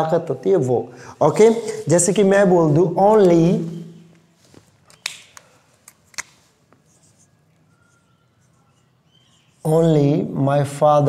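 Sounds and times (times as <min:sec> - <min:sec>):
marker scratching on whiteboard: 0:06.8 - 0:09.8.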